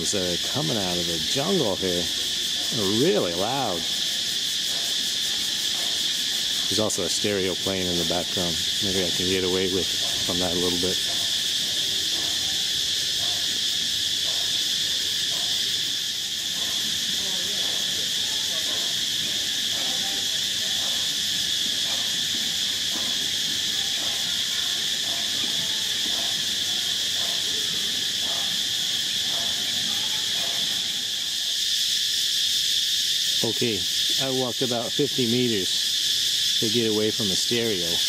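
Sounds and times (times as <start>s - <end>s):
insects droning: 0.0s - 38.0s.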